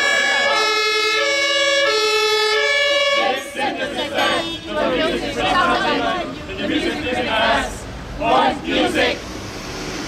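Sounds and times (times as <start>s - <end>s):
vocal ensemble singing held notes: 3.0s - 9.3s.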